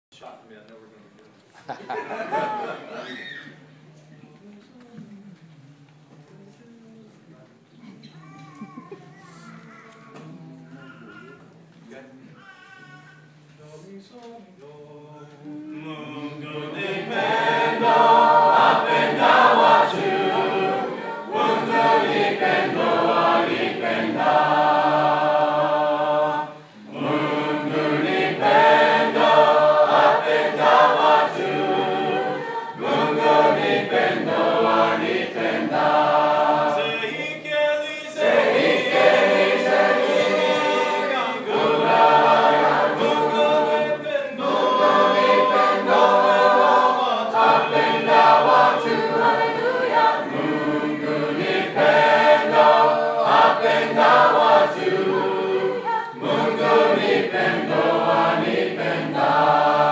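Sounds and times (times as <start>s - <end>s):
mixed choir singing a hymn: 1.9s - 3.2s, 13.7s - 59.9s.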